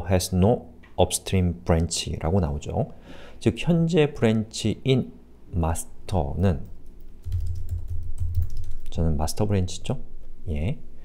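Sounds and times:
typing on computer keyboard: 6.6s - 9.0s.

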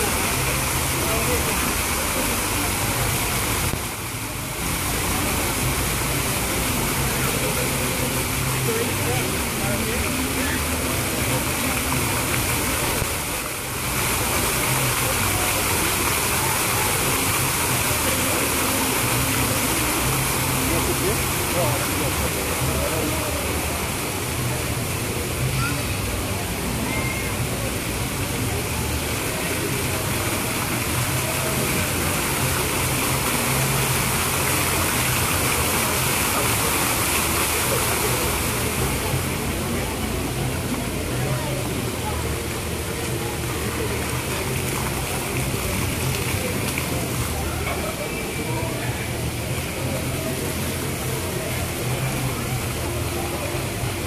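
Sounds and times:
fountain water splashing: 0.0s - 54.0s
voices of people: 0.0s - 54.0s.

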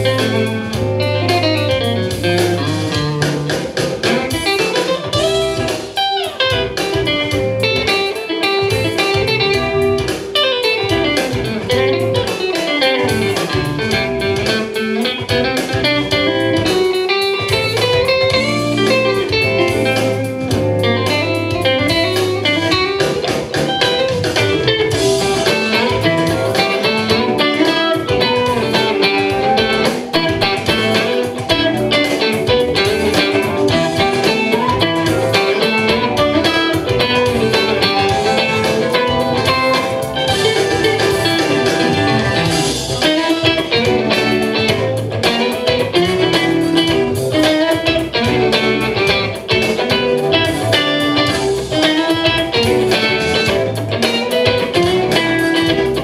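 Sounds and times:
electric guitar runs: 0.0s - 56.0s.

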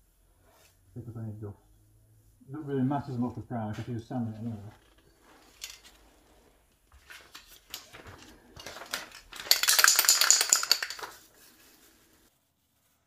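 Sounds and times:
light clicks and clinks: 7.7s - 11.2s.

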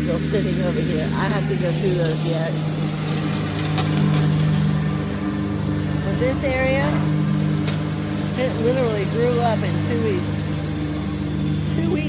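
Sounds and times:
tractor mower engine hum: 0.0s - 12.0s.

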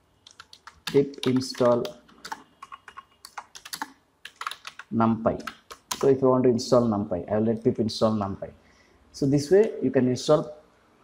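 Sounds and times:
computer keyboard keys clicking: 0.2s - 6.1s.

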